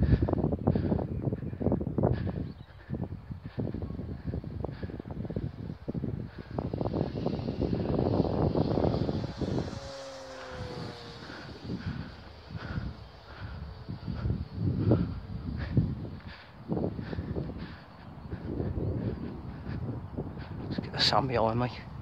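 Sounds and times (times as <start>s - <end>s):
wind buffeting microphone: 0.0s - 22.0s
model plane motor whine: 3.5s - 20.8s.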